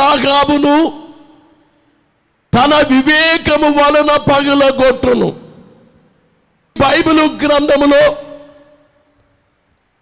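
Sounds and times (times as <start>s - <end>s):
man speaking into a microphone: 0.0s - 1.5s, 2.5s - 6.0s, 6.7s - 8.9s.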